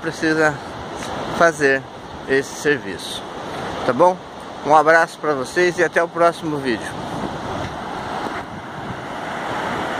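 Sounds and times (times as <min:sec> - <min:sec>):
surf washing onto beach: 0:00.0 - 0:09.9
wind buffeting microphone: 0:06.7 - 0:09.9.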